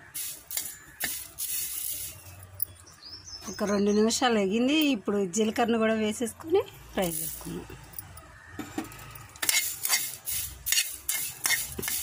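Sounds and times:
spatula scraping leaves in pan: 0:09.4 - 0:12.0.

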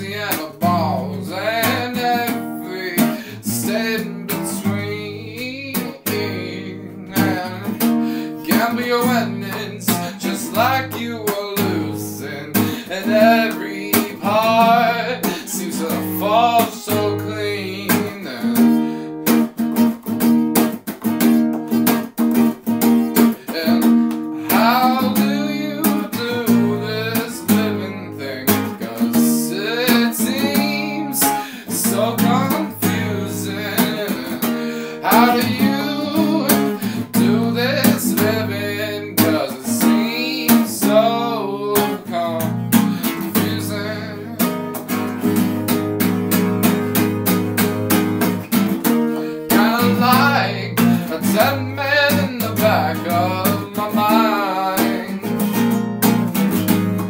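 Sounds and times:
person singing: 0:00.0 - 0:19.4, 0:22.9 - 0:45.7, 0:47.7 - 0:57.0
acoustic guitar strummed: 0:00.0 - 0:57.0.

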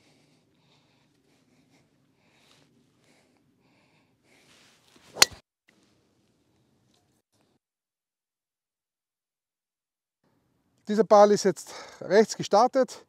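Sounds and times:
golf club swish: 0:04.8 - 0:05.4
golf ball impact crack: 0:05.1 - 0:05.4.

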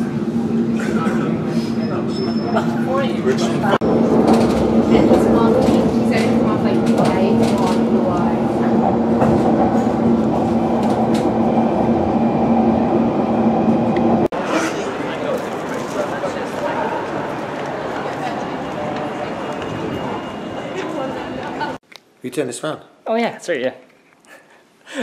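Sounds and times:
passenger train running: 0:00.0 - 0:21.8
street noise: 0:00.0 - 0:22.0.

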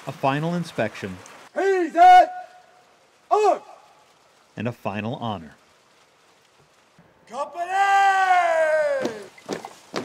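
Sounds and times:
person shouting drawn-out calls: 0:03.3 - 0:03.9, 0:07.3 - 0:09.4.

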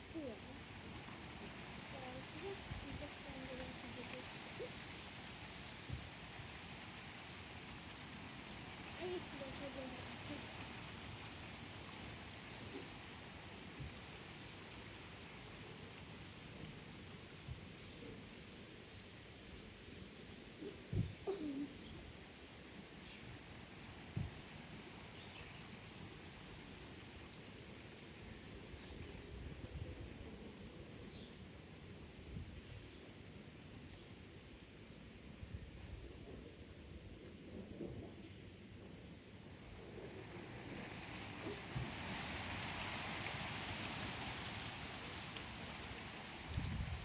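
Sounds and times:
wind rustling leaves: 0:00.0 - 0:47.0
cooing bird call: 0:20.6 - 0:22.0.

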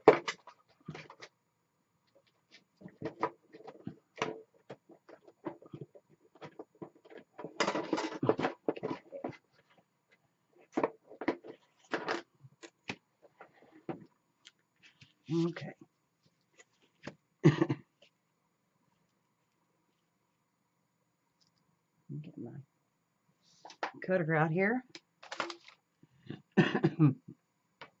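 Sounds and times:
desk items knocks and rustles: 0:00.0 - 0:01.3, 0:02.8 - 0:09.8, 0:10.6 - 0:14.1.

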